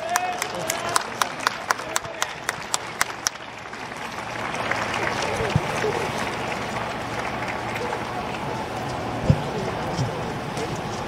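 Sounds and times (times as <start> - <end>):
rhythmic clapping: 0.0 - 10.7
crowd applause: 0.0 - 11.0
crowd voices: 0.0 - 11.0.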